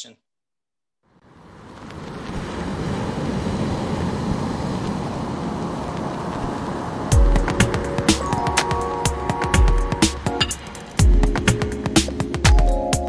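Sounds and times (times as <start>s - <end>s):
ocean waves washing on beach: 1.2s - 12.4s.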